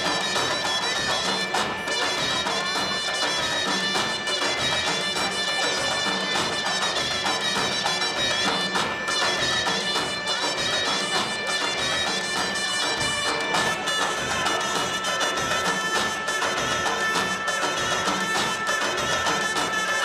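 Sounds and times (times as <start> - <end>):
folk dance music: 0.0 - 20.0.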